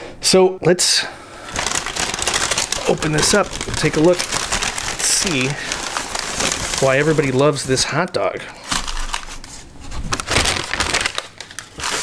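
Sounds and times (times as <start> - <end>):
paper bag rustling and crinkling: 1.4 - 12.0.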